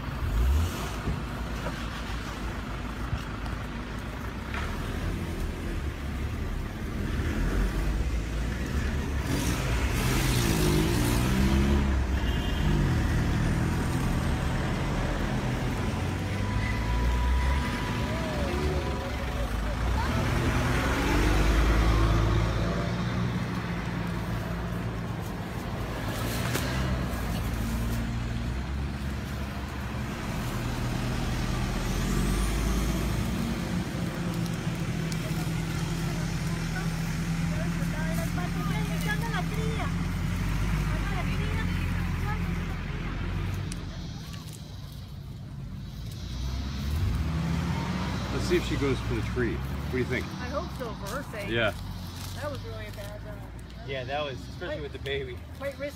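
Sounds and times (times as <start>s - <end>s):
vehicle engines rumbling: 0.0s - 55.9s
indistinct voices: 14.0s - 55.9s.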